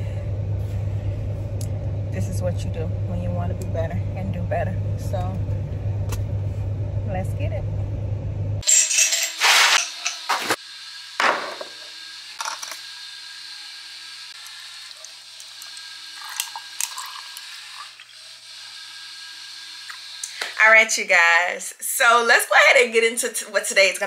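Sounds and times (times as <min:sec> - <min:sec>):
drink pouring over ice: 0:14.8 - 0:18.2.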